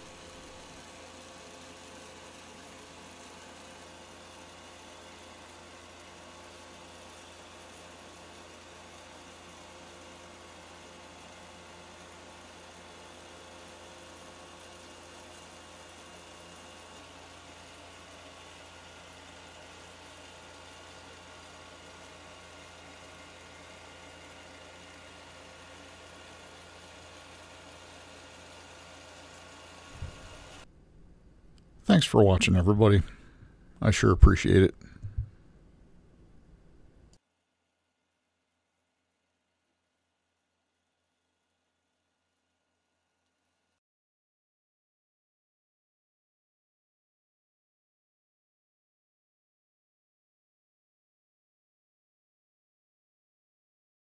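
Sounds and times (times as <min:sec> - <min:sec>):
wood lathe motor humming: 0:00.0 - 0:30.7.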